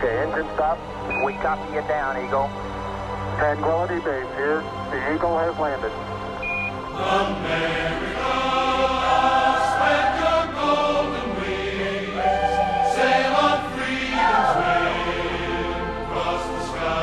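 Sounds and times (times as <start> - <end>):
choir singing held chords: 0.0 - 5.0, 5.8 - 17.0.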